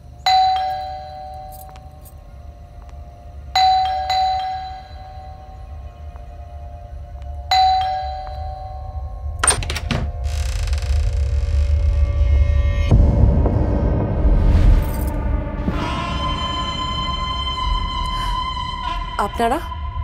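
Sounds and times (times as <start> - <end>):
ding-dong doorbell chime: 3.6 - 5.5, 7.5 - 9.2
low rumble: 8.9 - 20.0.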